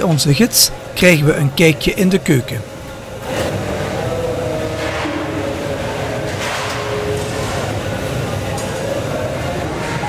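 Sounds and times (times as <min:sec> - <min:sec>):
rumbling kitchen hall noise: 0:00.0 - 0:10.0
faint wavering hum: 0:00.3 - 0:10.0.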